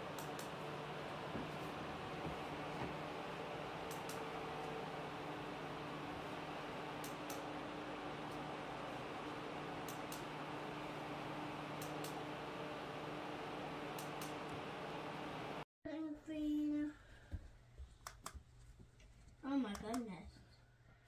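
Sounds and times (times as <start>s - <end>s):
ceiling fan air rush: 0.0s - 15.6s
faint low motor hum: 0.0s - 17.7s.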